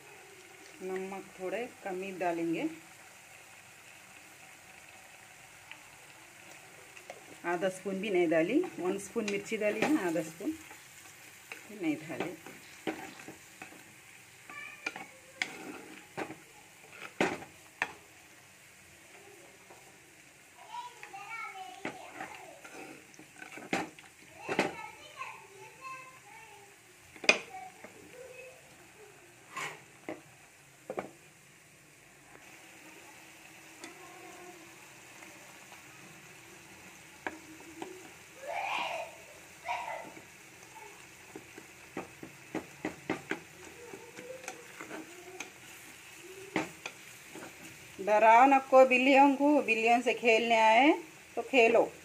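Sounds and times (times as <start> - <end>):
children's voices: 0.0 - 1.0, 14.4 - 17.1, 19.0 - 23.1, 24.2 - 29.6, 32.8 - 36.1, 37.3 - 41.2, 43.4 - 46.8
faint sizzle of curry: 0.0 - 52.0
wooden spatula stirring curry: 5.8 - 18.1, 20.9 - 24.8, 39.3 - 48.0
spatula knocking against pot: 42.0 - 43.4.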